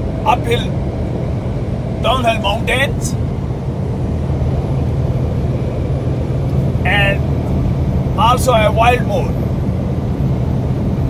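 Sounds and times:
road noise: 0.0s - 11.0s
vehicle engine hum: 0.0s - 11.0s.

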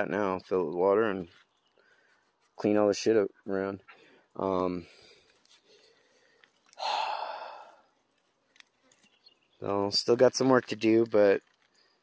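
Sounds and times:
person sighing: 6.8s - 7.8s.

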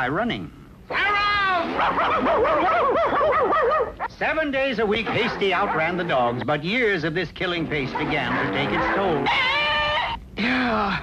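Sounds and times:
high falling cry: 0.9s - 3.9s, 7.7s - 10.7s
cartoon dogs yelping: 0.9s - 4.2s, 5.0s - 6.4s, 7.6s - 10.2s.

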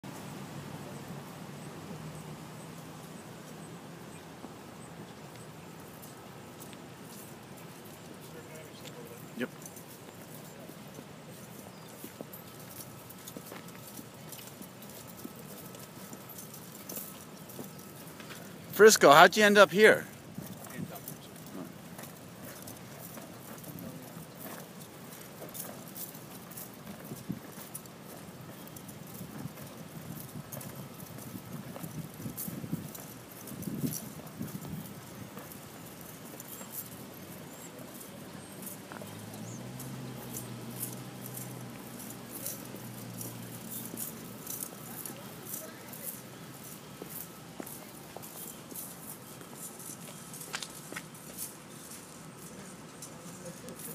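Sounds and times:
footsteps on concrete sidewalk: 0.0s - 53.9s.

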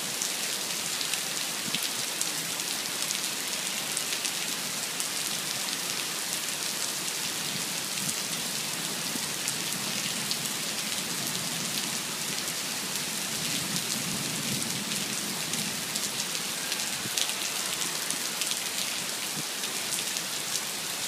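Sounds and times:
heavy rain on pavement and cars: 0.0s - 21.0s.

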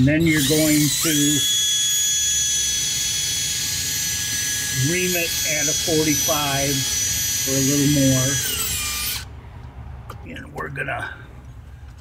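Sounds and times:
electric drill whining: 0.1s - 9.3s.

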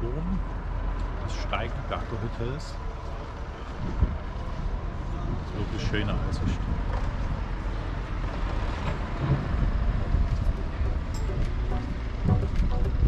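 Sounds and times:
wind buffeting microphone: 3.6s - 13.0s.

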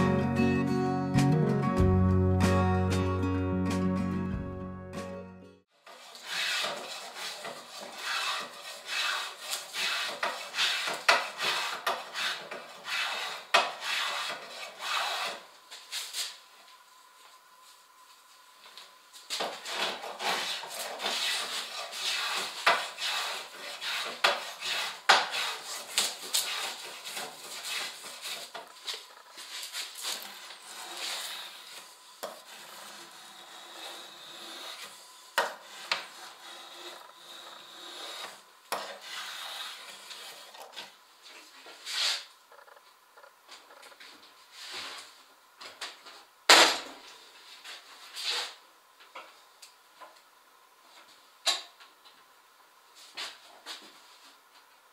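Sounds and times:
hand tool rasping wood: 6.0s - 15.4s, 19.6s - 40.9s
spokeshave scraping wood: 6.0s - 15.4s, 19.4s - 42.8s.

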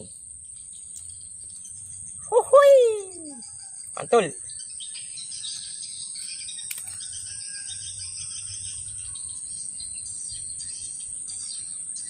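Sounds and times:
birds chirping: 0.0s - 12.0s
high insect drone: 0.0s - 12.0s.

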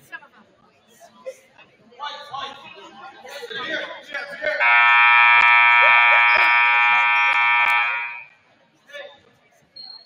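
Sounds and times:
scoreboard horn blast: 4.6s - 8.3s.

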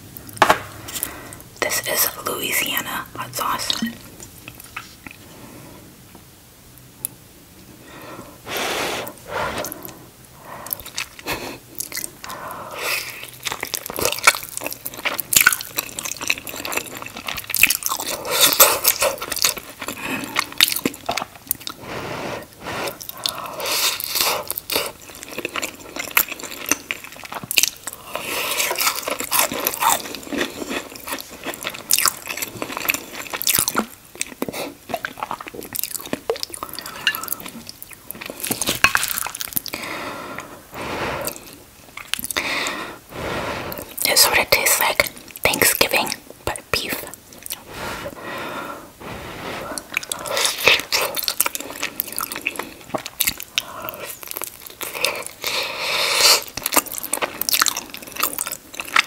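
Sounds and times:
close chewing and mouth smacks: 3.5s - 5.2s, 10.6s - 21.8s, 22.5s - 40.6s, 41.2s - 42.8s, 43.7s - 48.3s, 49.6s - 59.0s.

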